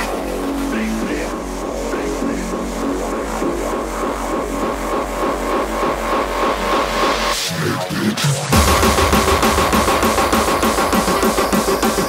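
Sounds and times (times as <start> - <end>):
hardcore electronic music: 0.0 - 12.0.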